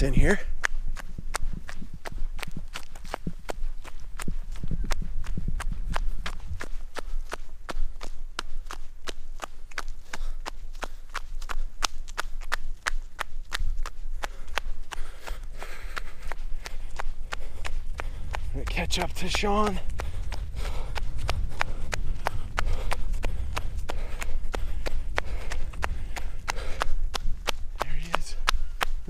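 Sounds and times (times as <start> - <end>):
running footsteps on dirt: 0.0 - 29.0
low rumble: 19.7 - 29.0.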